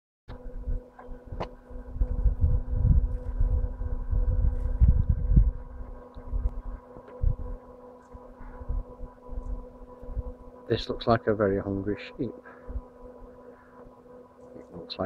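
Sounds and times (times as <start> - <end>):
faint steady hum: 0.3 - 15.0
wind buffeting microphone: 0.4 - 7.6.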